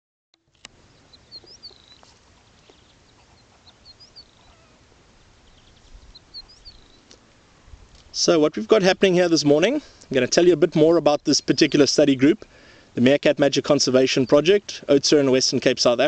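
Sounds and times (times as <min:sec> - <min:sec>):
quiet open-air background: 0:00.3 - 0:16.0
small bird chirping: 0:00.7 - 0:07.3.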